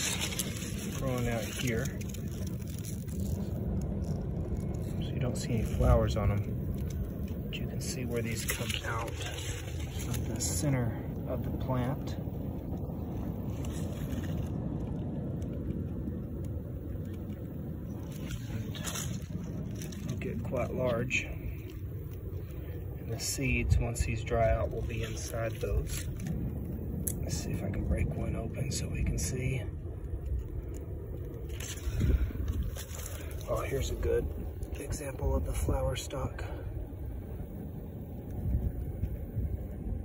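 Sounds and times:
fingers scraping and rustling: 0:00.0 - 0:05.6
low rumbling noise: 0:00.0 - 0:40.0.

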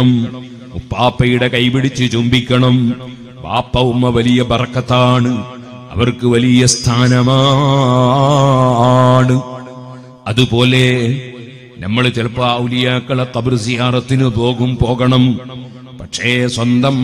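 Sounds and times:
man chanting melodically: 0:00.0 - 0:17.0.

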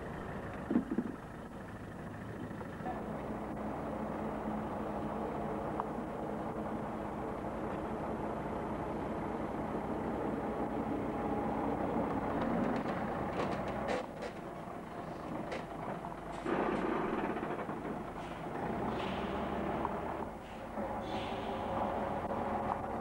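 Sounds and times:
diesel engine drone: 0:00.0 - 0:23.0
tyres rumbling: 0:00.0 - 0:23.0.

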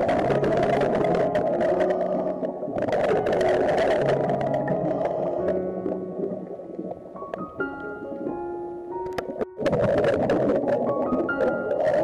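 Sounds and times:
background music with held notes: 0:00.0 - 0:12.0
diver's bubbles rushing underwater: 0:00.0 - 0:12.0.

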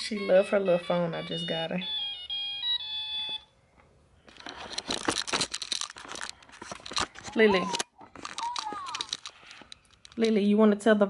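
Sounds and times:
toy phone beeping tune: 0:00.0 - 0:03.5
rustling and scraping: 0:03.8 - 0:10.4.

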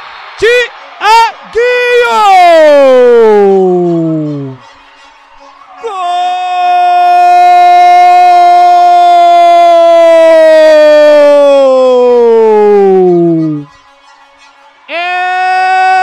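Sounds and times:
commentator shouting into microphone: 0:00.4 - 0:04.6.

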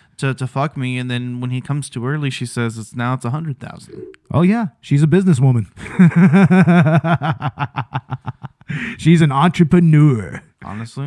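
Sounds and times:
man laughing: 0:05.8 - 0:09.0.

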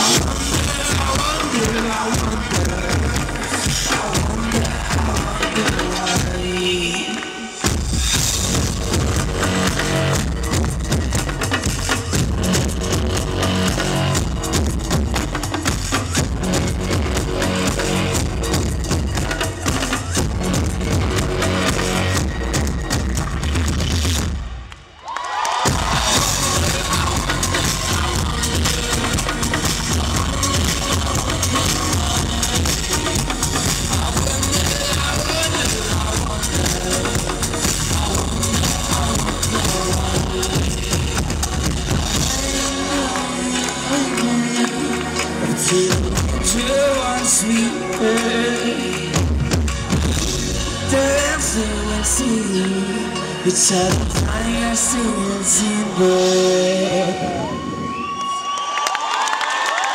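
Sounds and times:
electro-pop band playing: 0:00.0 - 0:24.7, 0:25.5 - 0:58.2
synthesizer line: 0:25.7 - 0:57.7.

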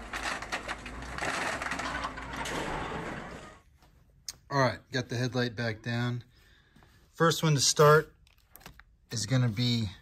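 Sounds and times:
metal crunching and snapping: 0:00.0 - 0:03.6.

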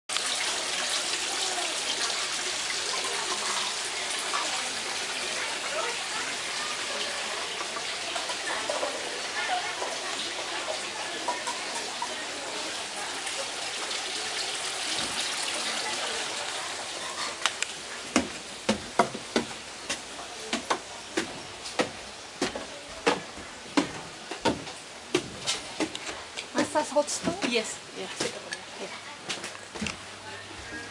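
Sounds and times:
fountain water splashing: 0:00.1 - 0:18.8.

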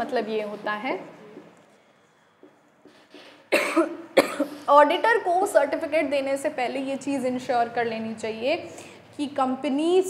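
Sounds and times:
marker tapping on whiteboard: 0:02.4 - 0:03.3
woman coughing: 0:03.5 - 0:04.6.

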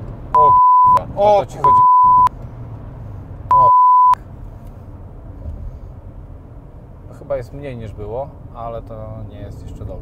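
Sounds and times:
car road rumble inside cabin: 0:00.0 - 0:10.0
censor bleep: 0:00.4 - 0:01.0, 0:01.6 - 0:02.3, 0:03.5 - 0:04.2.

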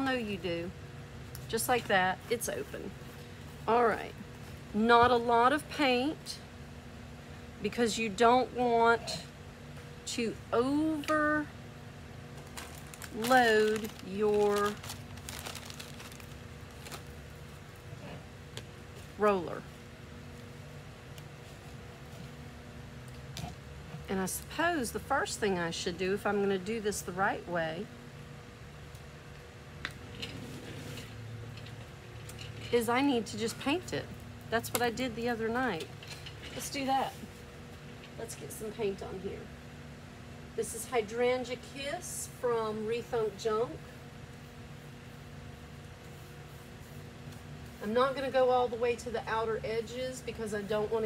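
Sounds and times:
electric fan humming: 0:00.0 - 0:51.0.

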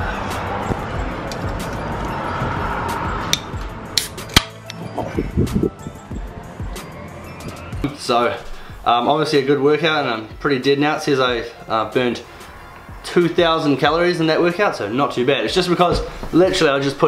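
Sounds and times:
rushing wind: 0:00.0 - 0:07.8.

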